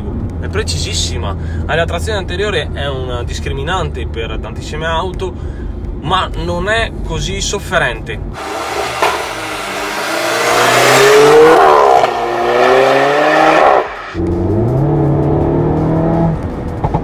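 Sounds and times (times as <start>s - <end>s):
car engine inside cabin: 7.4s - 17.0s
car engine accelerating past: 8.4s - 17.0s.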